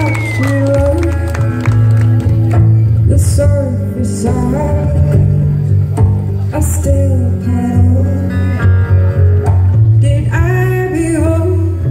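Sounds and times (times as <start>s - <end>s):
person singing: 0.0s - 1.9s, 2.9s - 9.2s, 10.0s - 11.9s
live band playing guitars and bass: 0.0s - 11.9s.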